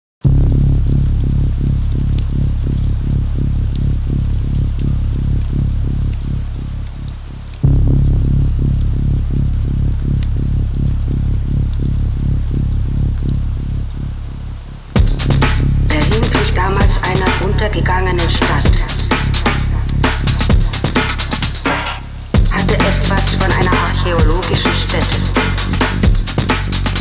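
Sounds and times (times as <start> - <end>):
electronic music: 0.2 - 27.0
crackling ticks: 1.2 - 27.0.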